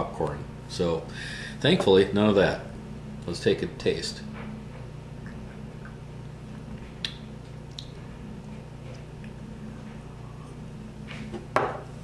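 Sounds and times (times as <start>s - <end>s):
low hum: 0.0s - 12.0s
glass knocking on countertop: 11.6s - 11.8s.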